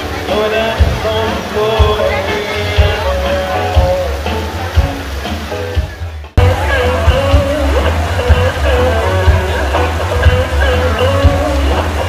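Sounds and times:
live band playing amplified music: 0.0 - 12.0
steady drum beat: 0.0 - 12.0.

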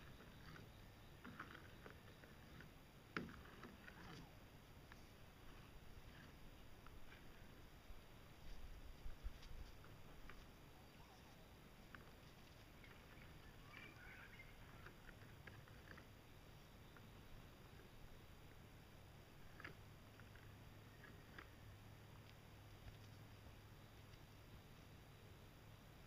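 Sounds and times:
faint low hum: 0.0 - 26.0
faint ticks: 19.3 - 24.4.

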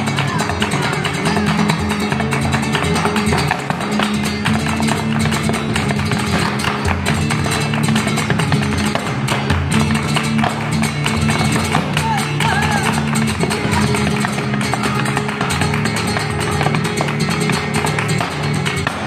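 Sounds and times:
woman singing: 0.0 - 3.6, 11.9 - 17.6
flamenco guitar playing: 0.0 - 19.0
sharp hand-clapping: 0.0 - 19.0.

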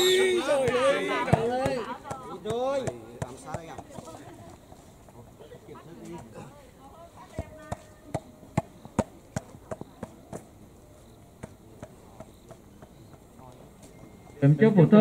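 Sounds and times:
volleyball bouncing on dirt: 0.3 - 4.3, 7.2 - 10.6, 11.3 - 13.3.

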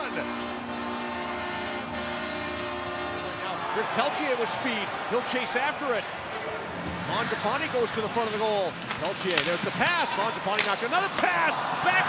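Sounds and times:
goal horn: 0.0 - 5.0
crowd noise: 2.6 - 12.0.

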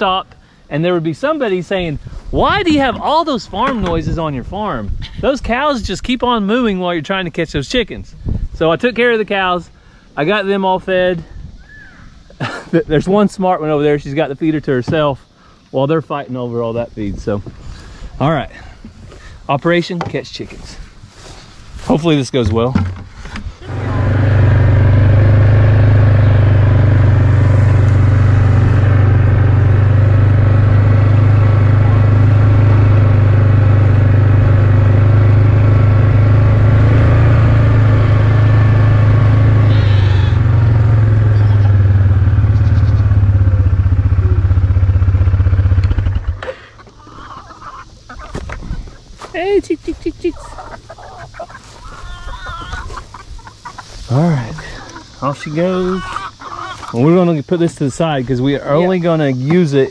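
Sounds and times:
single-cylinder engine running: 23.6 - 46.5.

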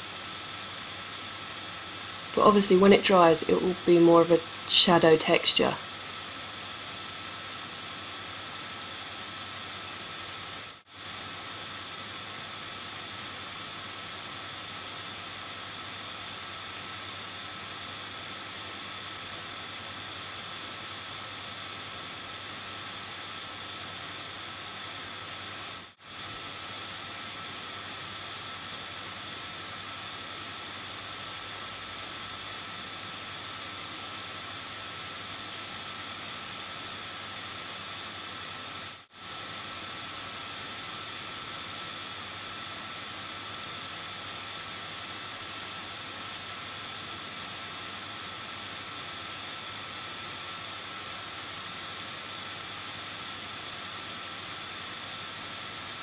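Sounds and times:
faint high whine tones: 0.0 - 56.0.

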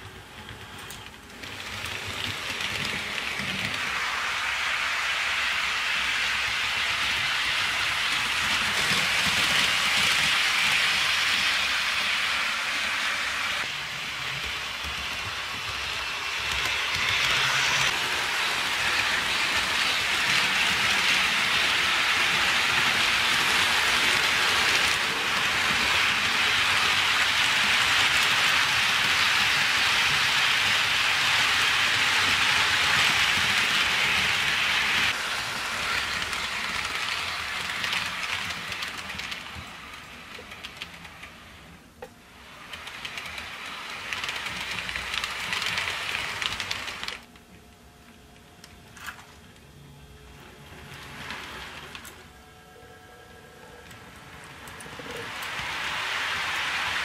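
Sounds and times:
model train wheels clattering on rails: 0.0 - 47.3, 53.8 - 57.0.

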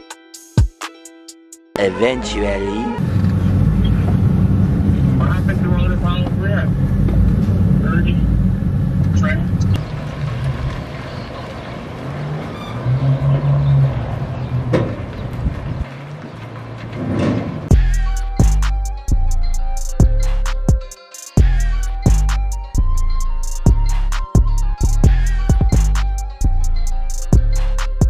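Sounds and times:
vehicle engine rumbling: 2.8 - 20.7, 21.4 - 28.0.

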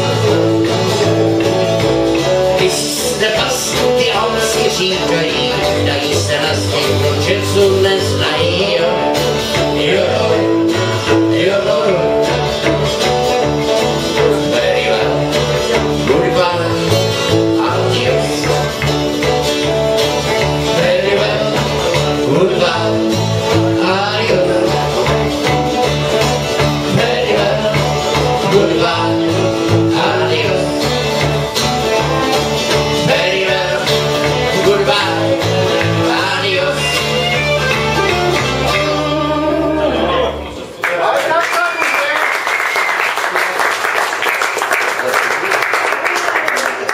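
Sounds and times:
strummed twelve-string guitar: 0.0 - 40.6
bass guitar line: 0.0 - 40.8.

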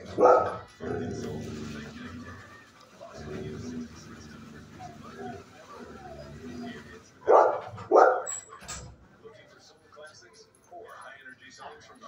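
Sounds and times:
dog barking: 0.0 - 0.7, 7.2 - 8.4.

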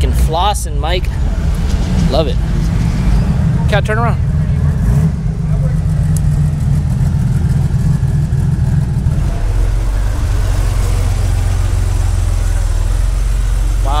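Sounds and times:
car engines passing: 0.0 - 14.0.

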